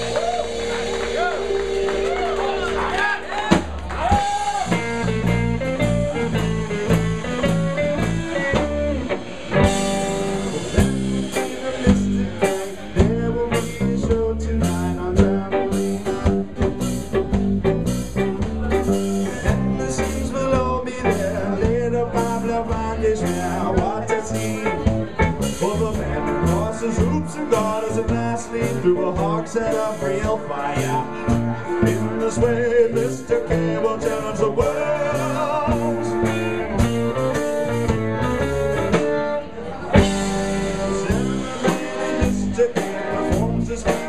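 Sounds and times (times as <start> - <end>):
drum kit: 0.0 - 44.0
electric guitar: 0.0 - 44.0
acoustic guitar: 3.6 - 44.0.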